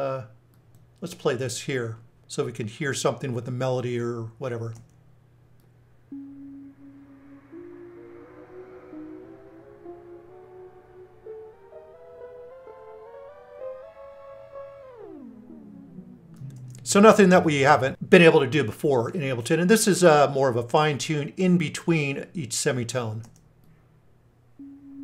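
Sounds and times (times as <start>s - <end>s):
pitch-shifting synthesizer tone: 6.1s - 18.0s, 24.6s - 25.0s.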